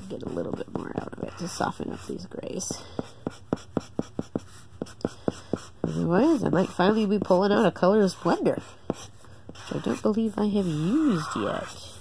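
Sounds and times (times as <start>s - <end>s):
marker scratching on paper: 0.0s - 12.0s.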